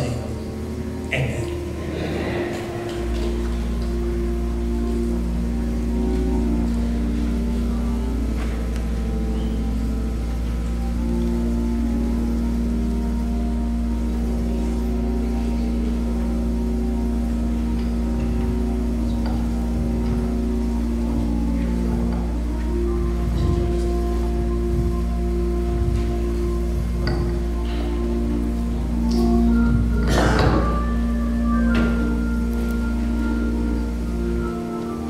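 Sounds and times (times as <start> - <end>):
soft instrumental church music: 0.0 - 35.0.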